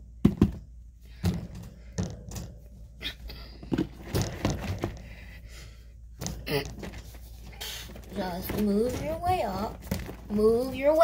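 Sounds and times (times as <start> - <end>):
plastic cage knocking: 0.2 - 2.8, 3.6 - 5.2, 7.9 - 11.0.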